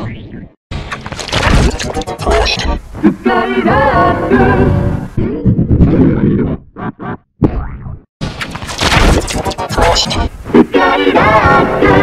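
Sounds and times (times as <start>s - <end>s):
distorted clash of effects and music: 0.4s - 2.8s, 8.2s - 10.7s
boing-like pitched sounds: 7.4s - 8.1s.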